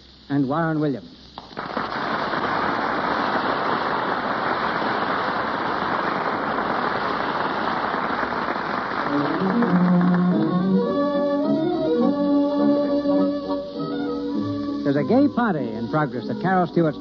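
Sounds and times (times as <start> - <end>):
audience applauding: 1.4 - 11.8
orchestra music: 9.1 - 17.0.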